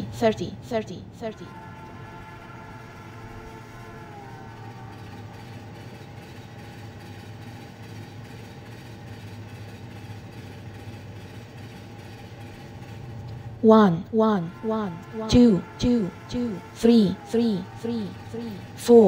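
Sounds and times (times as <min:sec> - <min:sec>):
train rumbling: 0:00.0 - 0:19.0.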